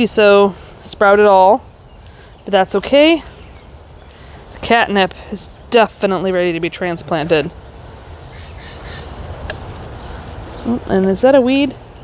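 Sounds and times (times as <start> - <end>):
faint crow cawing: 8.3 - 9.2.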